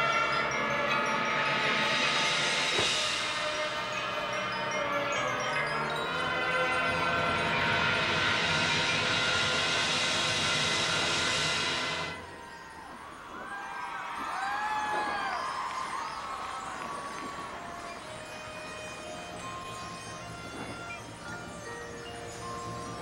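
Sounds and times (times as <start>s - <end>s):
cymbal wash: 0.0s - 23.0s
marching band sustained chord: 0.0s - 23.0s
swooping sliding tones: 0.0s - 23.0s.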